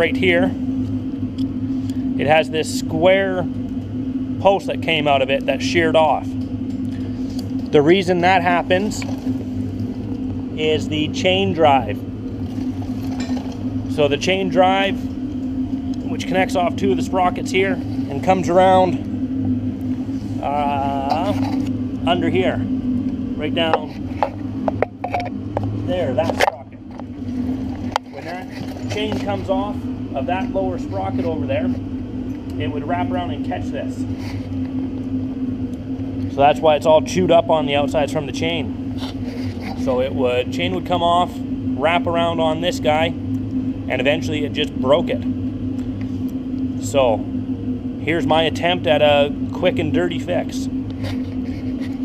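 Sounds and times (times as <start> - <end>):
furnace burner drone: 0.0 - 52.0
machine humming: 0.0 - 52.0.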